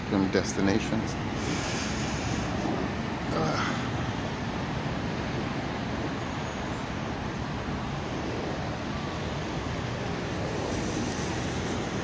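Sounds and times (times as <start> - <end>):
road traffic rushing: 0.0 - 12.0.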